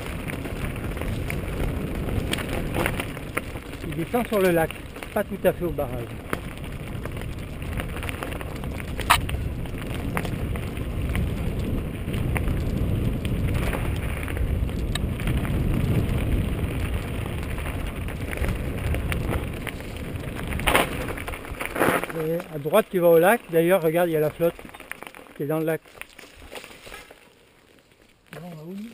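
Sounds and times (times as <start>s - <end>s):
bike rattling over bumps: 0.0s - 28.6s
bike tyres rumbling on dirt: 0.0s - 28.9s.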